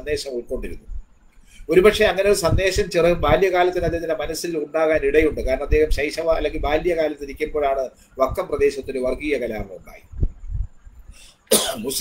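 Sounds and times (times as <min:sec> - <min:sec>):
man speaking: 0:00.0 - 0:01.0, 0:01.7 - 0:10.1, 0:11.5 - 0:12.0
man clearing his throat: 0:11.5 - 0:12.0
man coughing: 0:11.5 - 0:12.0.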